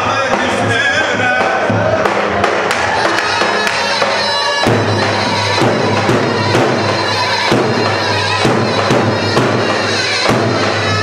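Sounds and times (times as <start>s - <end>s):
live band dance music: 0.0s - 11.0s
punchy drum strikes: 0.0s - 11.0s.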